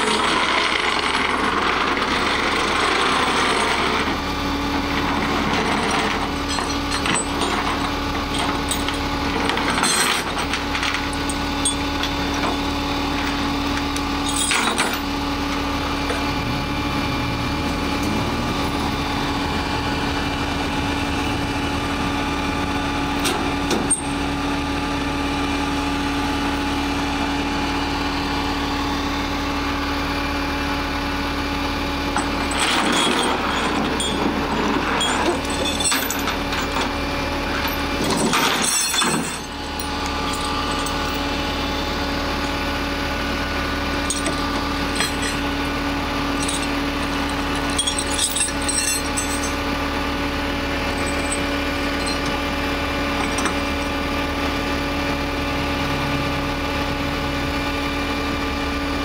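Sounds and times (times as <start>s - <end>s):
street traffic: 0.0s - 59.0s
vehicle engine idling: 10.6s - 32.6s, 38.7s - 59.0s
short metallic clinks: 44.0s - 45.5s, 46.4s - 49.6s, 50.9s - 52.5s, 53.2s - 54.0s.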